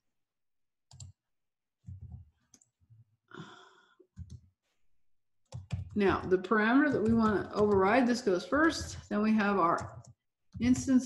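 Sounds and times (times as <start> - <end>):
keyboard and mouse clicks: 0.9 - 1.2, 4.1 - 4.5, 5.5 - 11.0.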